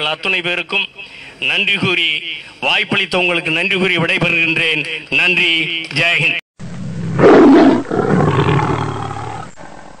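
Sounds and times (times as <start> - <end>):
lion roar: 6.7 - 10.0.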